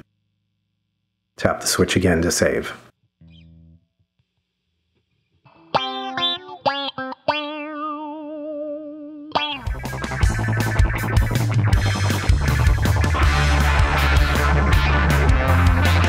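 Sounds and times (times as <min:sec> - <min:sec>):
distorted guitar passage: 0:05.2 - 0:16.0
filtered electric guitar notes: 0:05.4 - 0:16.0.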